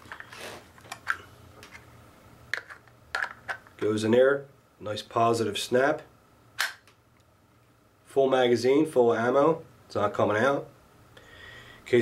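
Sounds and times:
magazine snapping into pouch: 6.6s - 6.9s.

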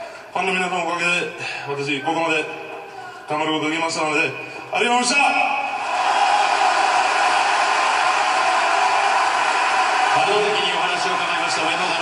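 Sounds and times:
arena crowd applauding: 5.8s - 12.0s.

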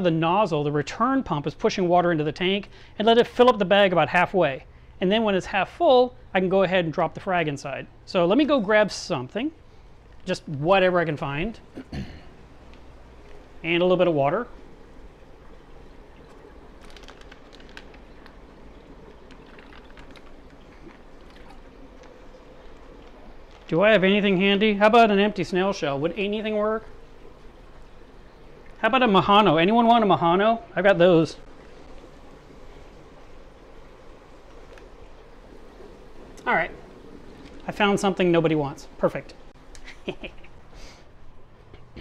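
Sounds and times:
aquarium pumps humming: 0.0s - 42.0s
water trickling into plastic bag: 12.5s - 29.9s, 31.4s - 38.7s
small ticks: 16.2s - 23.7s.

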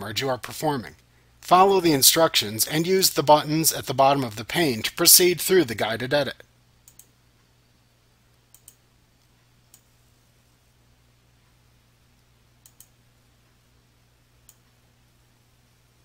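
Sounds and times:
faint low hum: 0.0s - 16.0s
computer mouse buttons clicking: 6.9s - 7.1s, 8.5s - 8.8s, 12.6s - 13.0s.

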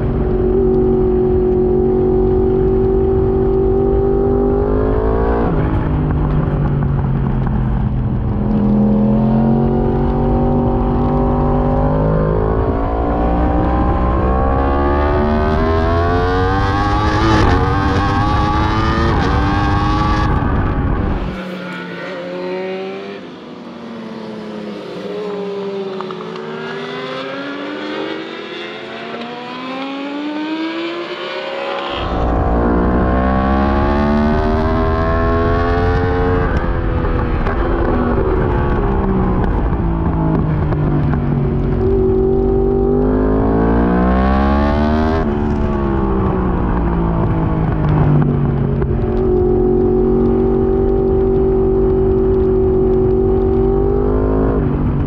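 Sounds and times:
race engine at full throttle: 0.0s - 55.0s.

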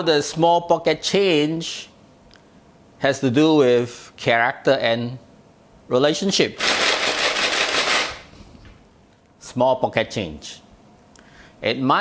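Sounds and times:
coins rattling in plastic jar: 6.6s - 8.2s.

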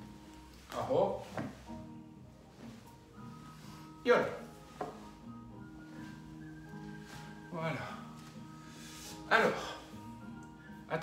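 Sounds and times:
person rolling on exercise mat: 0.0s - 10.0s
soft background music: 0.0s - 11.0s.

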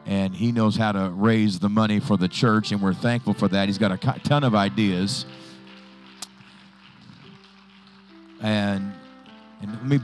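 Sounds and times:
soft keyboard chords: 0.0s - 10.0s.

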